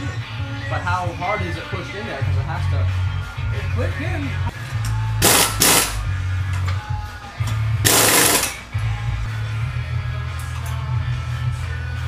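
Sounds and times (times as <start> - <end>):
pneumatic impact wrench: 5.2 - 6.0, 7.8 - 8.6.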